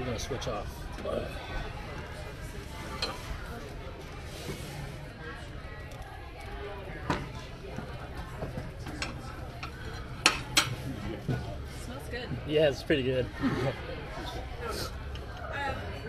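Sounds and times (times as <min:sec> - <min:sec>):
murmur of diners' voices: 0:00.0 - 0:16.0
plates and cutlery clinking: 0:02.8 - 0:03.6, 0:08.3 - 0:11.5.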